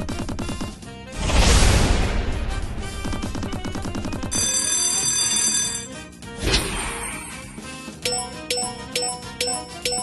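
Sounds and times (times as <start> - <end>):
slot game music: 2.0 - 10.0.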